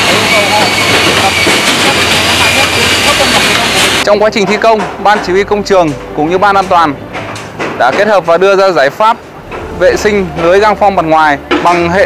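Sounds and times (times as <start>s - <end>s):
rushing construction-site noise: 0.0s - 12.0s.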